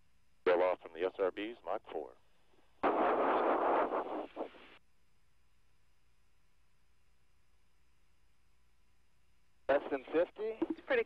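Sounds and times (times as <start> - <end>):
radio static: 2.8 - 4.8, 9.7 - 11.0.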